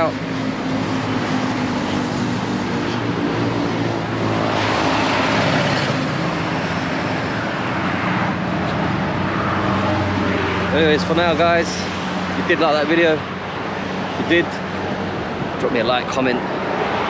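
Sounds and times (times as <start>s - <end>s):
traffic engine hum: 0.0s - 17.0s
vehicle passing: 0.0s - 17.0s.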